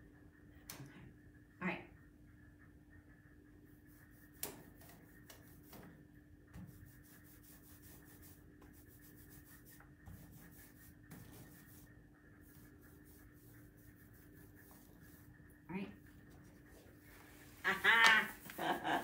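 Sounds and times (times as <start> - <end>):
faint hum: 0.0 - 19.0.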